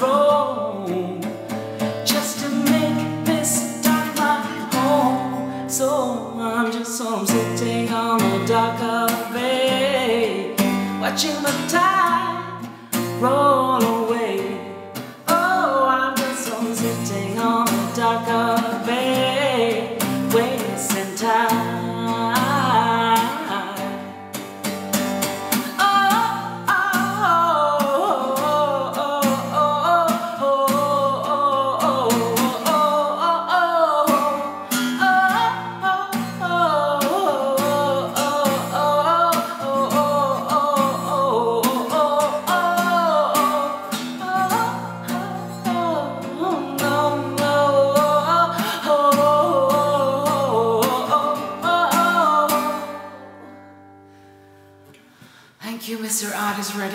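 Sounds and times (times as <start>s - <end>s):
woman singing: 0.0s - 53.7s, 55.6s - 56.9s
strummed guitar: 0.0s - 55.5s.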